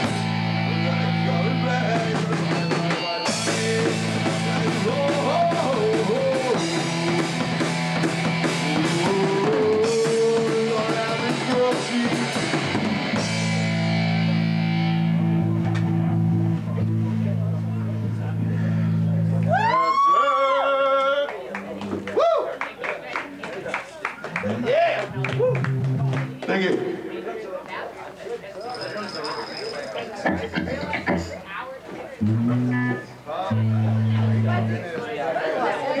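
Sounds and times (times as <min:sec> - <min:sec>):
guitar amplifier electric hum: 0:00.0 - 0:02.3, 0:12.8 - 0:19.9, 0:32.2 - 0:35.0
people chattering: 0:00.0 - 0:07.6, 0:14.1 - 0:36.0
drum kit: 0:00.0 - 0:17.0, 0:25.0 - 0:26.4, 0:30.2 - 0:31.4, 0:32.2 - 0:34.8
electric guitars: 0:00.0 - 0:20.0, 0:24.3 - 0:26.5, 0:32.2 - 0:35.0.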